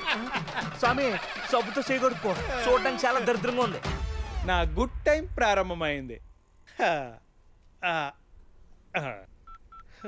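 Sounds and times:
phone keypad beeps: 9.4 - 10.0.

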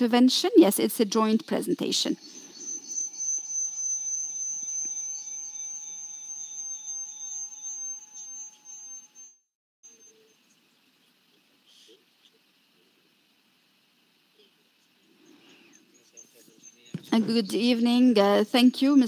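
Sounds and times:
high-pitched electronic whine: 1.4 - 11.9
low electronic tone: 2.2 - 10.3.

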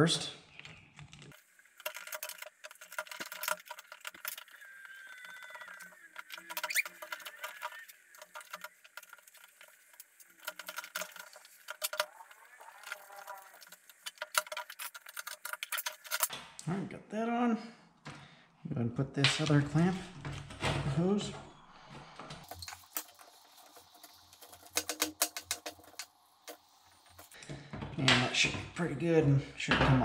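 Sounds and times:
small parts clicking and rattling: 0.5 - 16.4, 22.4 - 27.5.

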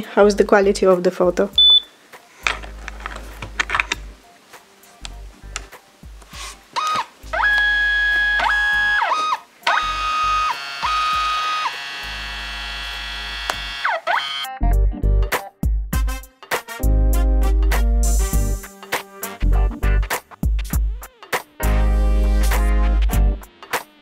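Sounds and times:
printer motor whine: 6.8 - 14.5.

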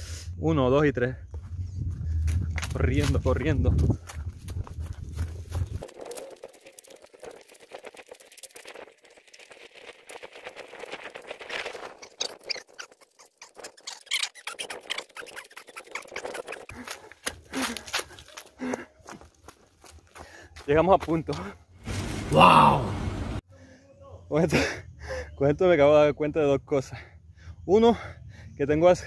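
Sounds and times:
footsteps crunching on dry leaves: 1.4 - 7.6, 16.8 - 22.2
person breathing hard: 16.7 - 19.3, 20.1 - 20.6.

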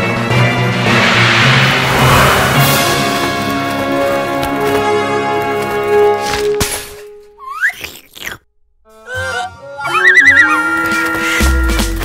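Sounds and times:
rising whistle-like glide: 0.3 - 4.1
playful cartoon score music: 8.8 - 12.0.

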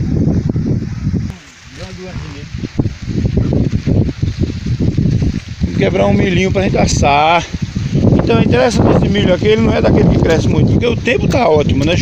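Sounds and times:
wind buffeting microphone: 0.0 - 12.0
corn leaves rustling: 1.0 - 12.0.

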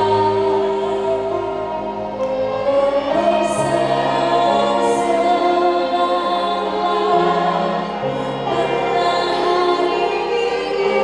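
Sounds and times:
group of singers: 0.0 - 11.0
string orchestra: 0.0 - 11.0.

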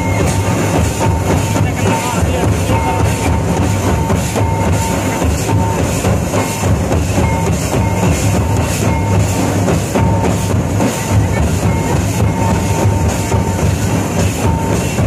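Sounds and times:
hand drums beating dance rhythm: 0.0 - 15.0.

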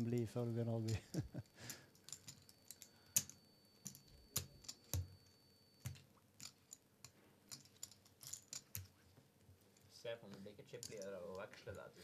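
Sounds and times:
poker chips clicking: 7.5 - 8.9.

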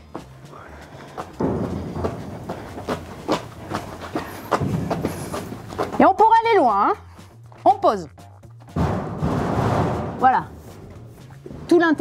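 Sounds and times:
footsteps and shuffling: 0.0 - 12.0
soft background music: 0.0 - 12.0
metal locker knocks: 1.4 - 2.4, 8.8 - 10.5.

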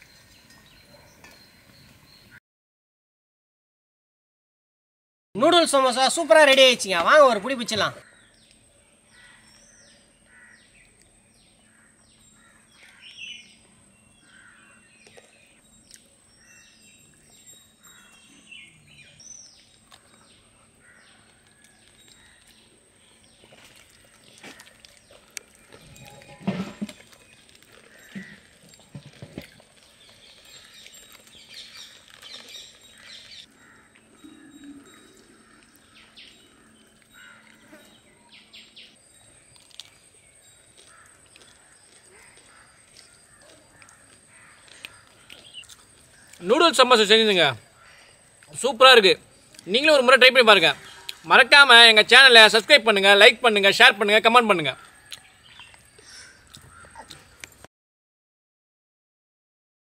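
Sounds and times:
small birds chirping: 0.0 - 2.4, 6.6 - 57.7.

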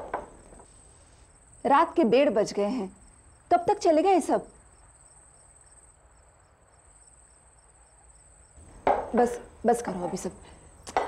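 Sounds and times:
crickets chirping: 0.0 - 11.0.

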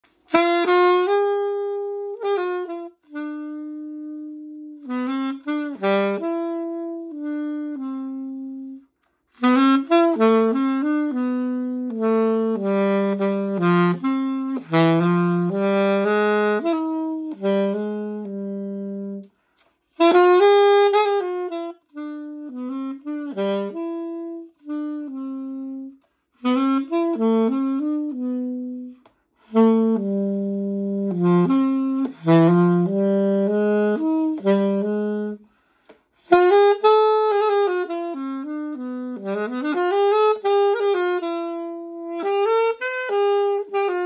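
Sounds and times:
solo saxophone melody: 0.0 - 44.0.

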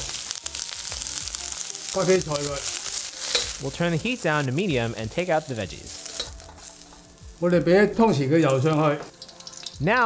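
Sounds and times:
vegetables sizzling in a wok: 0.0 - 10.0
spatula scooping in a wok: 2.6 - 3.8.

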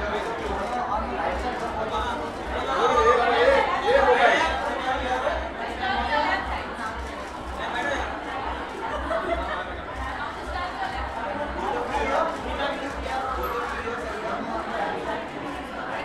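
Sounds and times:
people chattering: 0.0 - 16.0.

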